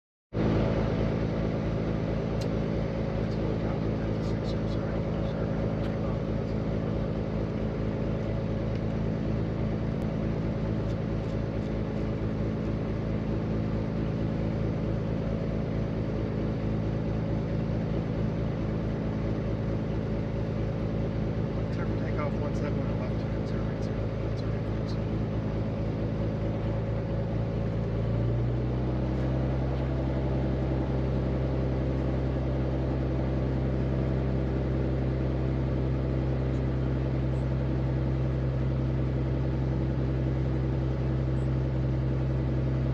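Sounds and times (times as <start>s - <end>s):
piston aircraft engine idling: 0.4s - 42.9s.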